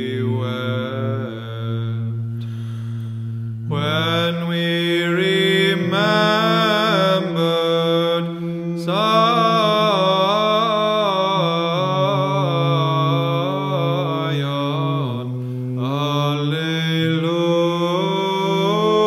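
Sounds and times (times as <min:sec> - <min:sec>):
chant melody: 0:00.0 - 0:19.0
low sung drone: 0:00.0 - 0:19.0.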